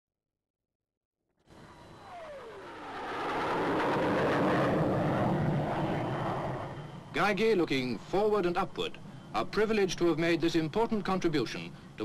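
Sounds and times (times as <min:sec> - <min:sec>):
engine whine dropping in pitch: 0:01.5 - 0:07.3
jet aircraft flying past: 0:01.5 - 0:08.4.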